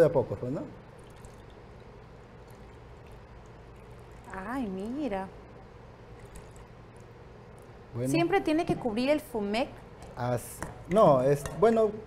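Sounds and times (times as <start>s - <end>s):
liquid trickling into bowl: 0.0s - 8.0s.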